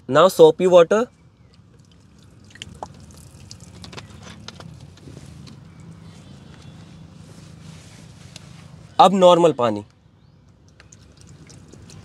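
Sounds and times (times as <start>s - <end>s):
water dripping and splashing: 1.5s - 5.0s, 10.5s - 12.0s.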